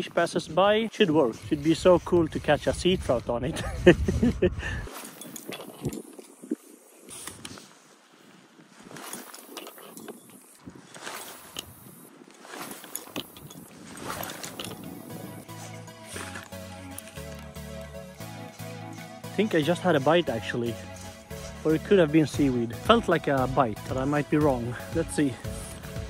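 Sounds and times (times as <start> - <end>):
fishing reel cranking: 9.0 - 22.5, 25.4 - 26.0
background music with bass line: 14.8 - 26.0.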